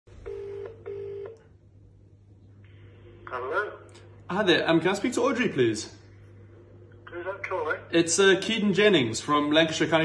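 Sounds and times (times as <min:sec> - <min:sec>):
telephone ringing tone: 0:00.2 - 0:01.4.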